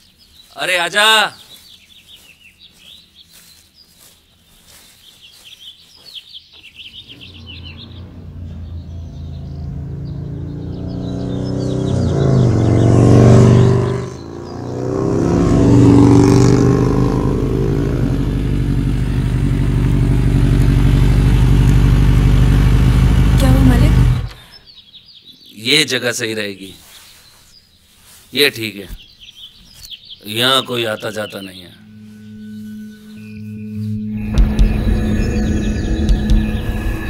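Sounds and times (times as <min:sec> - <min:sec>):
birds chirping: 0:00.0 - 0:37.0
motorcycle engine: 0:06.9 - 0:24.5, 0:31.8 - 0:37.0.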